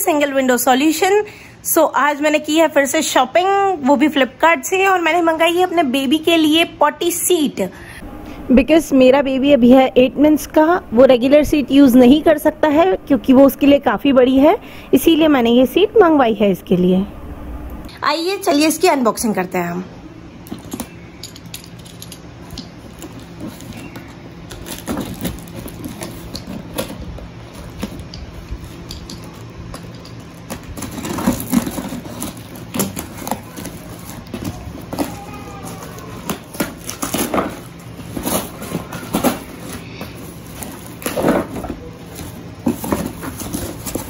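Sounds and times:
steady low hum: 0.0 - 44.0
packing tape peeled and torn: 22.5 - 28.2, 30.3 - 44.0
cardboard flaps crinkling: 22.8 - 28.8, 29.8 - 44.0.

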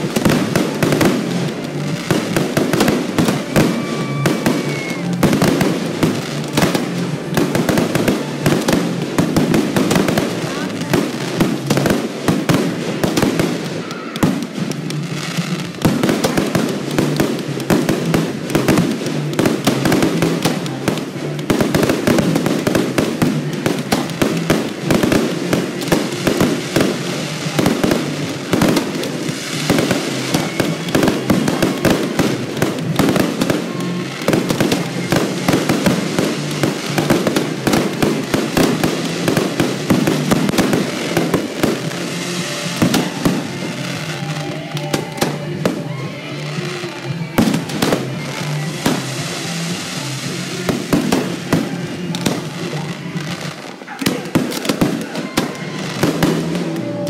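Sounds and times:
fireworks bangs and crackles: 0.0 - 57.0
music: 0.0 - 57.0.

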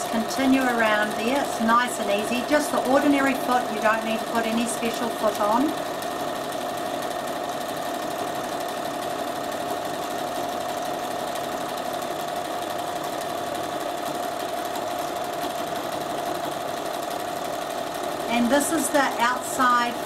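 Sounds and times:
sewing machine running: 0.0 - 20.0.

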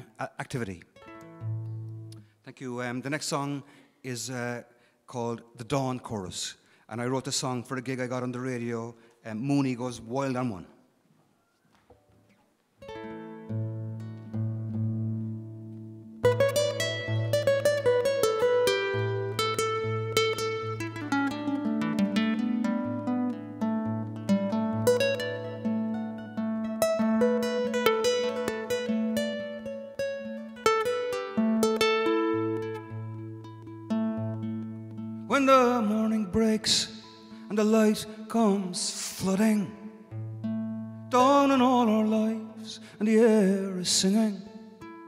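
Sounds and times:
acoustic guitar picking: 1.0 - 2.3, 11.6 - 45.0.

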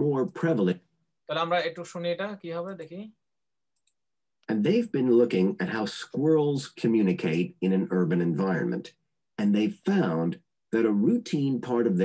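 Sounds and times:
person speaking: 0.0 - 3.3, 4.4 - 12.0.

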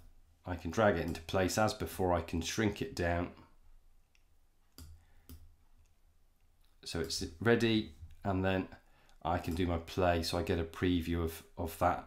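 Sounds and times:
man speaking: 0.4 - 3.5, 6.8 - 12.0
computer mouse clicks: 4.1 - 6.0.

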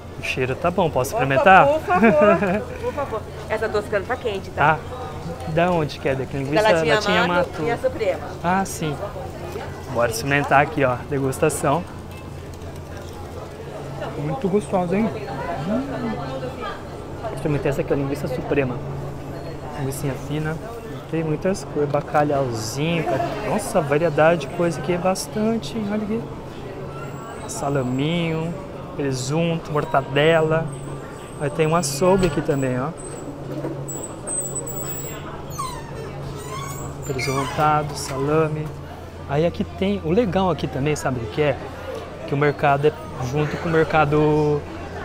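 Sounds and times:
faint chatter: 0.0 - 45.0
faint voices: 0.0 - 45.0.

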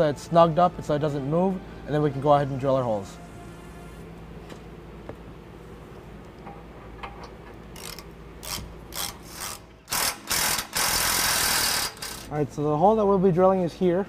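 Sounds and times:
socket ratchet clicking: 7.8 - 12.3
cordless power tool running: 9.5 - 12.3.

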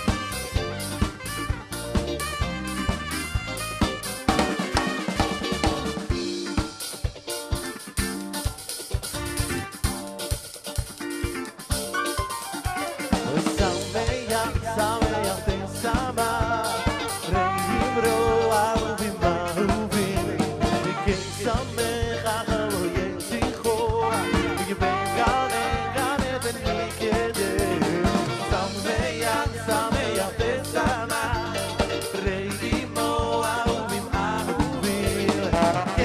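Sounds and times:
dance band melody lines: 0.0 - 36.0
drum kit playing: 0.0 - 36.0.

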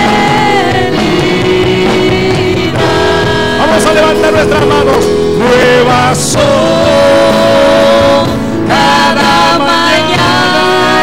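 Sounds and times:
instrumental accompaniment: 0.0 - 11.0
person singing into microphone: 0.0 - 11.0.

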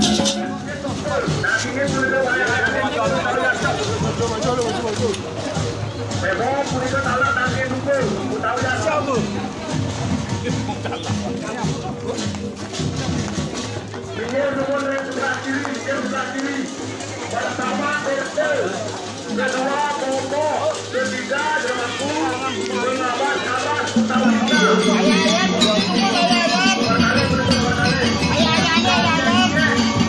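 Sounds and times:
gamelan processional music: 0.0 - 4.3, 15.7 - 30.0
crowd voices: 0.0 - 30.0.

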